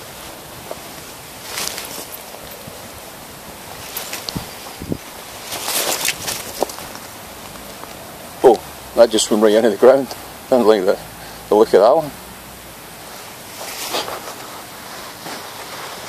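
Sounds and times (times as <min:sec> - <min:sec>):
clothing and camera rustling: 0:00.0 - 0:08.0, 0:13.1 - 0:16.0.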